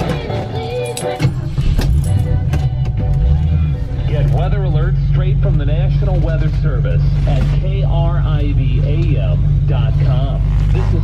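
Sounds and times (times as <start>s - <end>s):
car engine running: 0.0s - 11.0s
car radio playing music: 0.0s - 11.0s
voice on radio: 4.1s - 11.0s.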